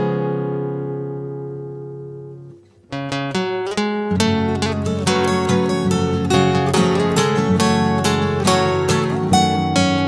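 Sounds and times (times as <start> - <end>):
peaceful instrumental music: 0.0 - 10.0.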